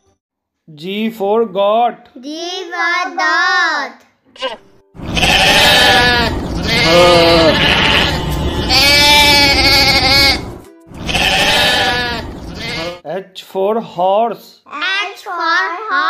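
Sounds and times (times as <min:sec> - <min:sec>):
goats bleating: 0:04.4 - 0:13.0.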